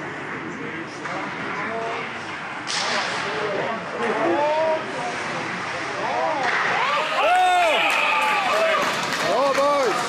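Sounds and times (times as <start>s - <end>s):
players and spectators voices: 0.0s - 10.0s
sharp crack: 2.6s - 3.5s
skates on ice: 6.4s - 10.0s.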